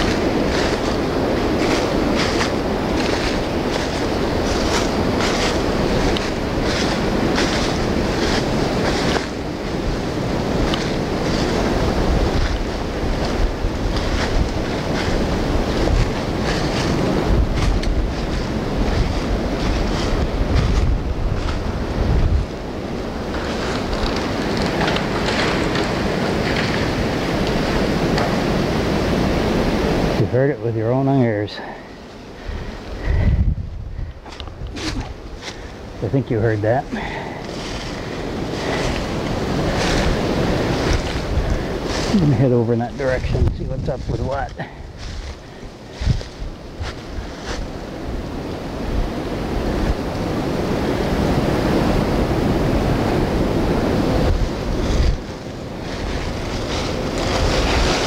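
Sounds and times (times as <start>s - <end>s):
footsteps crunching through dry leaves: 0.0s - 29.2s, 34.1s - 50.1s, 50.8s - 58.0s
wind rumble on microphone: 0.0s - 58.0s.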